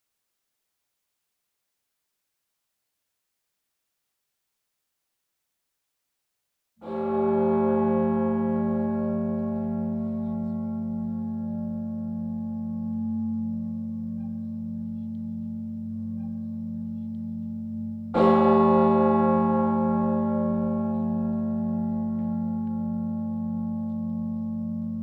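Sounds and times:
deep church bell ringing: 6.8s - 25.0s.

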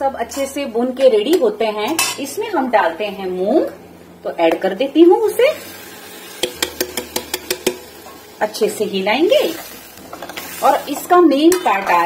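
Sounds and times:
metal bowl clinking against pan: 1.9s - 2.2s, 6.4s - 8.2s.

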